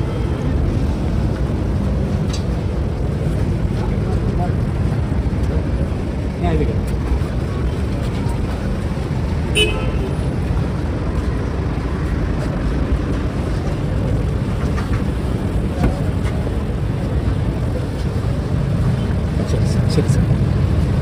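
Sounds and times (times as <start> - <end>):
crowd voices: 0.0 - 21.0
steady traffic: 0.0 - 21.0
short car horn toot: 9.6 - 10.1.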